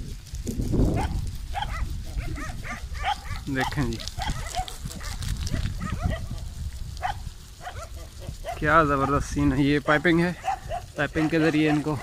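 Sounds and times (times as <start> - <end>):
steady low rumble: 0.0 - 11.0
dogs barking: 0.9 - 9.3, 9.9 - 12.0.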